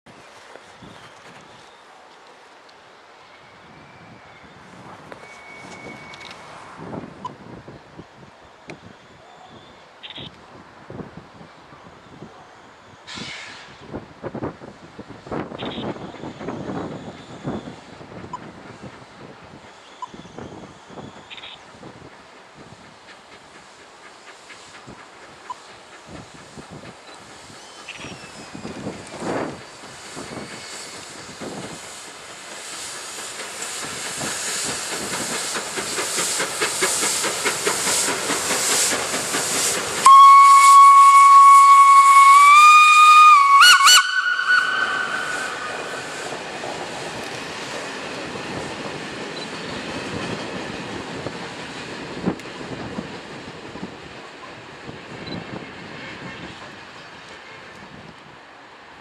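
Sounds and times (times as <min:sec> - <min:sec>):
steam locomotive passing: 0:00.1 - 0:59.0
steam whistle blast: 0:40.0 - 0:46.1.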